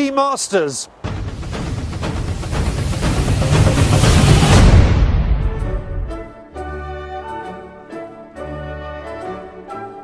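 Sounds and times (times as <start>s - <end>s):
rush of noise: 1.0s - 5.9s.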